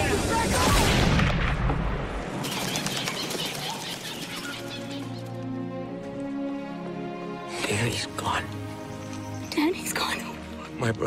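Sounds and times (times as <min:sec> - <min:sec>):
bird wings flapping: 0:02.3 - 0:05.4.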